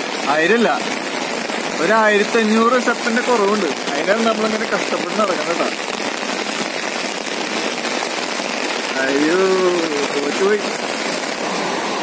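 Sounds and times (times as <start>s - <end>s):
rain on an umbrella: 0.0s - 12.0s.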